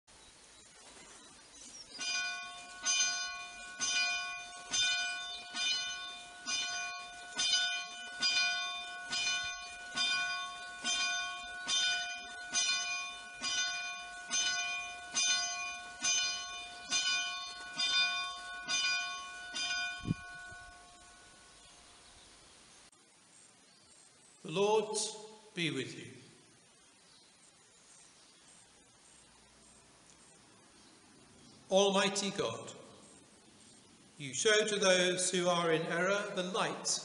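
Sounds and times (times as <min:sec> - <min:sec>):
church bell ringing: 0:02.0 - 0:21.6.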